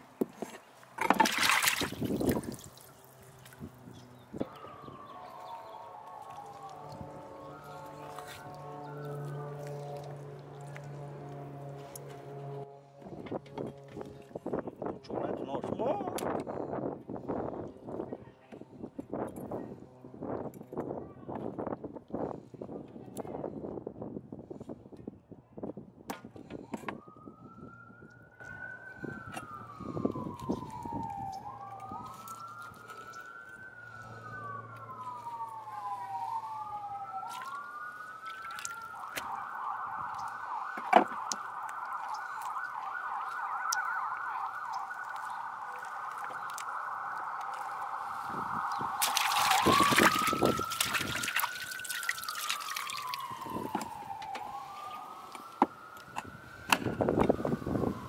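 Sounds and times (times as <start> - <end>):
emergency vehicle siren wailing: 0.1 - 20.5, 25.6 - 58.0.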